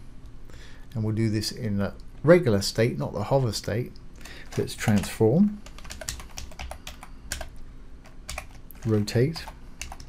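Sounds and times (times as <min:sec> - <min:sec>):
computer keyboard keys clicking: 0:04.4 - 0:10.0.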